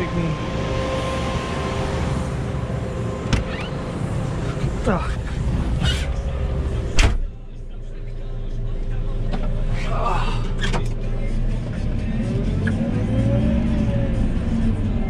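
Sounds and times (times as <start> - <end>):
cab door shutting: 3.2 - 3.8, 6.9 - 7.3.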